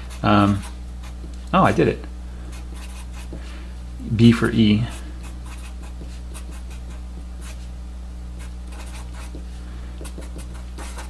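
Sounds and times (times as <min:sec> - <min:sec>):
marker scratching on paper: 0:00.0 - 0:01.3, 0:02.5 - 0:03.4, 0:04.9 - 0:07.7, 0:08.4 - 0:11.0
steady low hum: 0:00.0 - 0:11.0.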